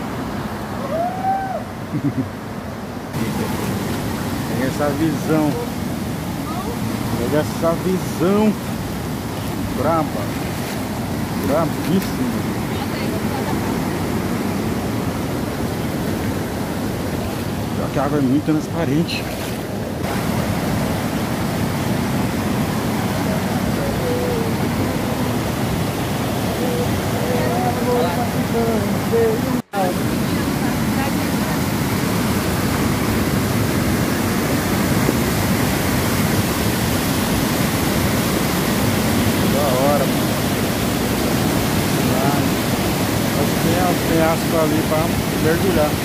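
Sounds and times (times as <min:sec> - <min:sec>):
waterfall rushing over rocks: 0:00.0 - 0:46.0.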